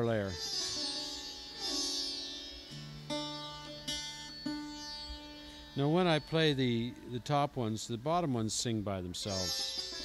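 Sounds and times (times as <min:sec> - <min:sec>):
slide guitar plucked notes: 0:00.0 - 0:08.2, 0:09.2 - 0:10.0.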